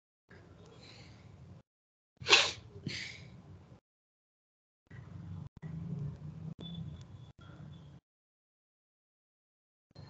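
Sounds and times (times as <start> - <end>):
person sneezing: 2.2 - 3.2.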